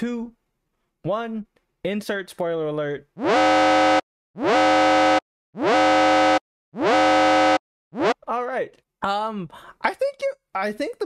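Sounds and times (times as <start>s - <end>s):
buzzing distorted alarm siren: 3.2s - 8.2s.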